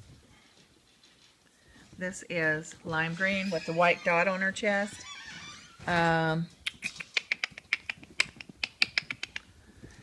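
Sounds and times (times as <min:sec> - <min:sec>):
puppy toenails clicking on floor: 0:05.9 - 0:10.0.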